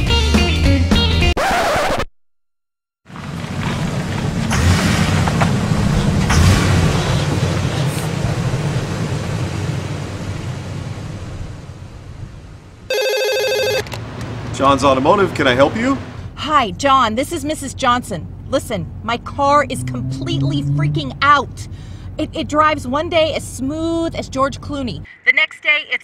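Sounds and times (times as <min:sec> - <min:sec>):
vehicle rumbling: 0:03.0 - 0:25.1
telephone bell ringing: 0:12.9 - 0:13.9.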